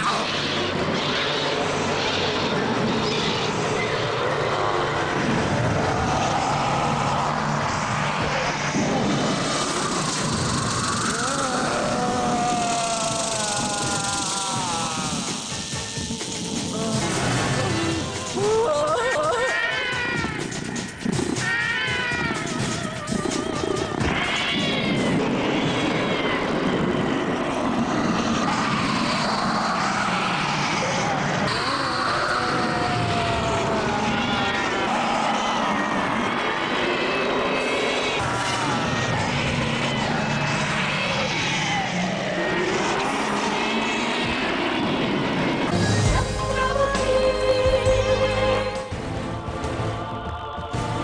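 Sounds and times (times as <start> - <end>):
dramatic background music: 0.2 - 28.4, 45.6 - 51.0
animal-like cries sliding in pitch: 5.9 - 44.7.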